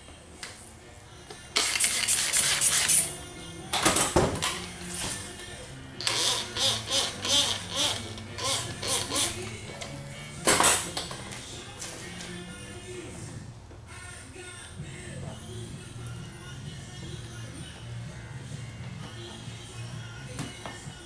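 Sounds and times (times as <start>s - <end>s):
background music: 0.0s - 21.0s
spray bottle squirting: 1.6s - 3.1s.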